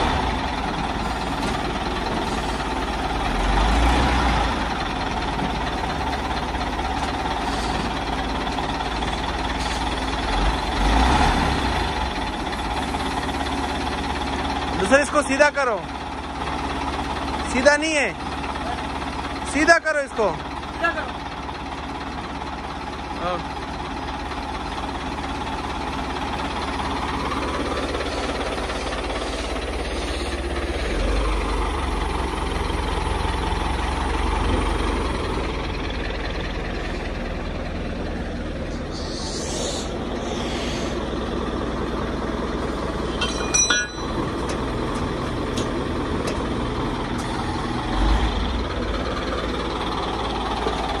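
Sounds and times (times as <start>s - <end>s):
diesel engine running: 0.0s - 51.0s
brief hisses: 38.9s - 41.0s.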